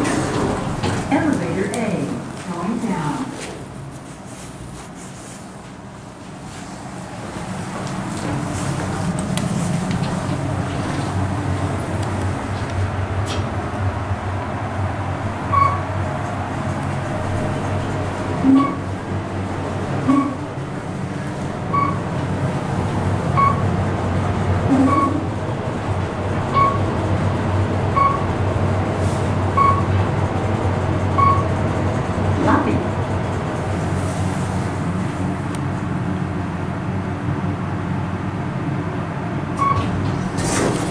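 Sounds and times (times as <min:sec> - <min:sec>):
elevator cab hum: 0:00.0 - 0:40.9
short electronic beeps: 0:15.5 - 0:15.8, 0:18.4 - 0:18.8, 0:20.1 - 0:20.4, 0:21.7 - 0:22.0, 0:23.4 - 0:23.6, 0:24.7 - 0:25.2, 0:26.6 - 0:26.8, 0:28.0 - 0:28.3, 0:29.6 - 0:29.9, 0:31.2 - 0:31.4, 0:39.6 - 0:39.8.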